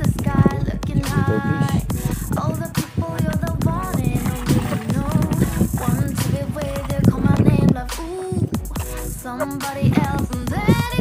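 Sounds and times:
sung vocal over a steady beat: 0.0 - 11.0.

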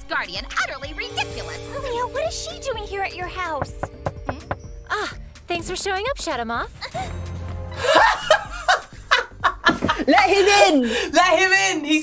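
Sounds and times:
low music: 0.0 - 11.1
women laughing hard: 7.8 - 10.7.

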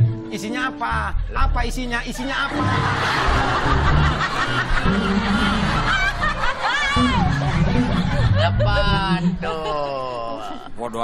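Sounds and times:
group of people laughing: 2.1 - 11.0
high laugh: 2.2 - 10.9.

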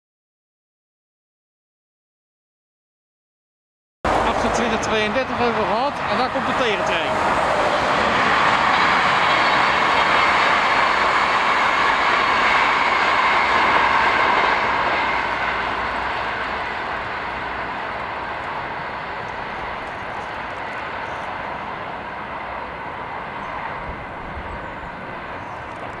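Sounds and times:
train passing on track: 4.0 - 26.0.

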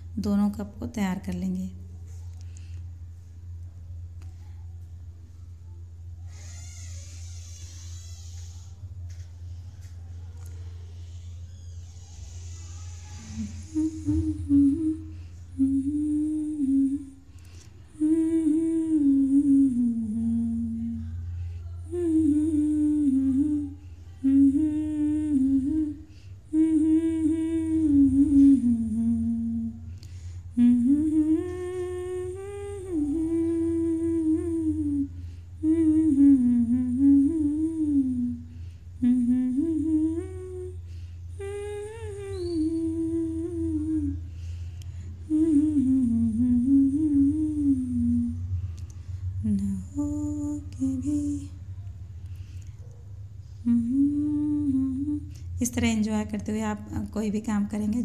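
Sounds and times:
woman humming a melody: 12.4 - 51.7, 53.4 - 58.0.

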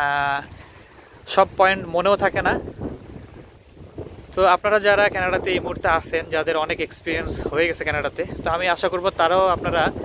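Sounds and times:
wind buffeting microphone: 0.0 - 10.0
person talking: 1.3 - 2.6, 4.3 - 10.0.

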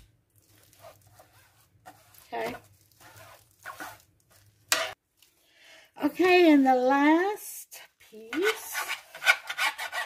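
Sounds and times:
knife scraping on cutting board: 0.7 - 4.0, 4.7 - 5.0, 8.3 - 10.0.

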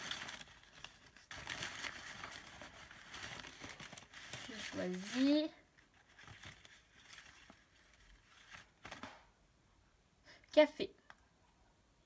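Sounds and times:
paper rustling and crinkling: 0.0 - 9.2.

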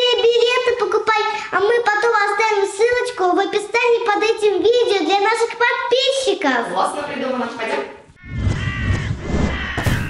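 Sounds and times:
harsh animal-like call: 8.2 - 10.0
sharp hit: 8.2 - 10.0.

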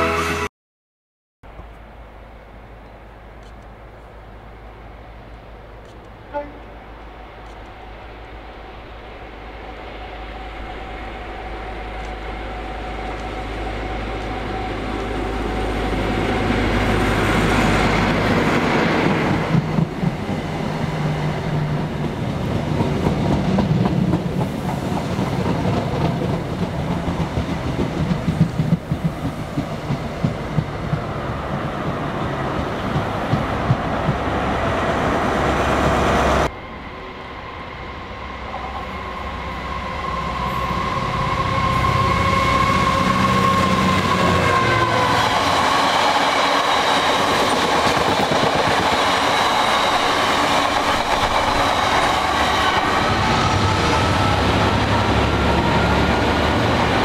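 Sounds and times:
diesel locomotive passing: 1.5 - 57.0
train wheels clicking over rail joints: 18.0 - 20.7, 21.4 - 34.6, 44.5 - 55.0.

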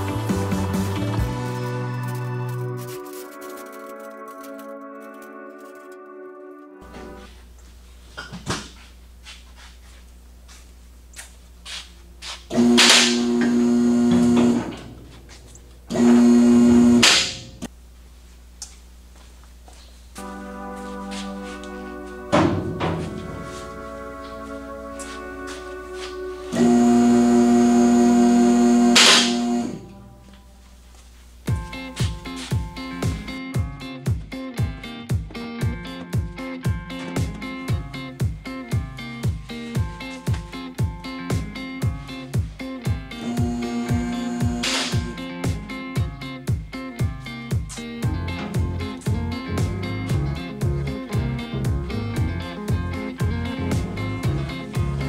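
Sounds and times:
background music: 0.0 - 7.4, 20.2 - 30.7, 31.5 - 55.0
electric pump motor humming: 12.5 - 17.7, 26.5 - 30.0, 43.2 - 45.2.

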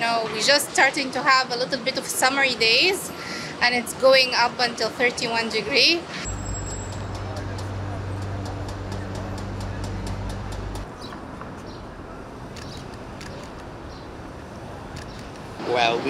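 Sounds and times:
city street traffic: 0.0 - 16.0
steady low hum: 6.2 - 10.8.

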